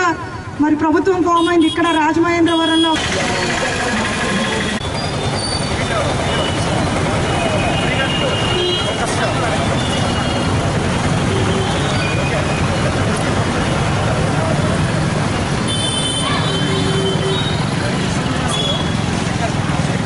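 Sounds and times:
road traffic noise: 0.0 - 20.0
crowd voices: 3.0 - 20.0.

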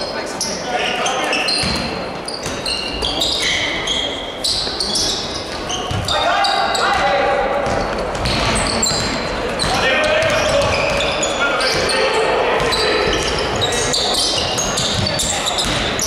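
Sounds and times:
shoes squeaking on hardwood: 0.8 - 7.1, 7.7 - 12.0
basketball bouncing: 1.6 - 2.6, 5.5 - 6.1, 7.0 - 11.8, 14.4 - 16.0
players shouting: 6.0 - 7.8, 8.5 - 14.6.

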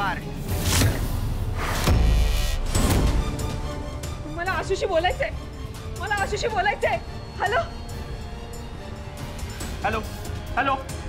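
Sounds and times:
background music with low drone: 0.0 - 11.0.

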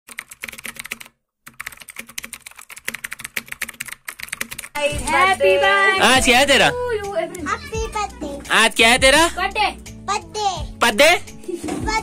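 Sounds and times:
keyboard typing clicks: 0.1 - 4.8.

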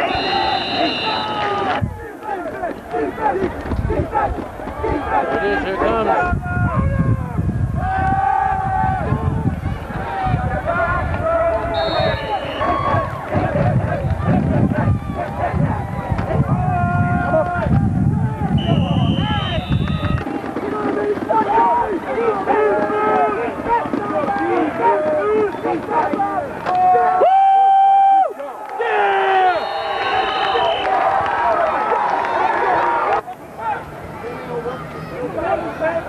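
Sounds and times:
short high whistle tones: 0.0 - 1.5, 11.7 - 12.8, 18.6 - 20.2, 29.5 - 31.0
spectators talking and calling out: 0.0 - 27.3, 28.3 - 36.0.

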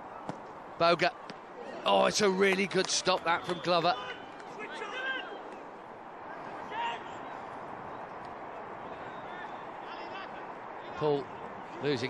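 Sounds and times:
distant shouts from players: 3.3 - 7.5.

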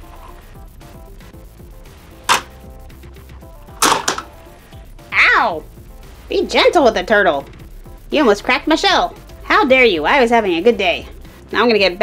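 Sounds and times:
quiet background music: 0.0 - 12.0
toy claw plastic clacks: 3.8 - 4.3.

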